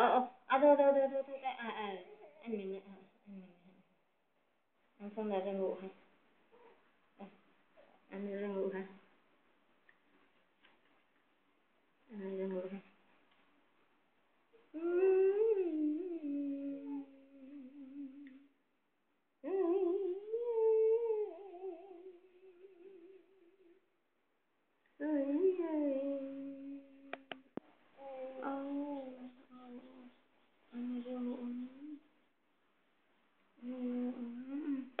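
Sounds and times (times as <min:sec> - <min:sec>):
woman humming: 0:00.8 - 0:03.9, 0:14.7 - 0:18.5, 0:19.4 - 0:23.8, 0:25.0 - 0:27.4, 0:28.0 - 0:32.1, 0:33.6 - 0:35.0.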